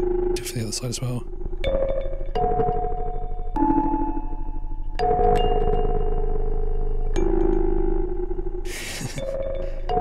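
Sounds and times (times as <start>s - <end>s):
ring-modulated synth melody: 0.0s - 8.6s.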